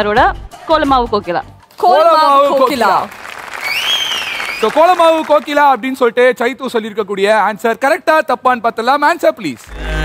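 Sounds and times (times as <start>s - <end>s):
audience applauding: 2.3s - 5.9s
rising and falling whistle: 3.6s - 4.7s.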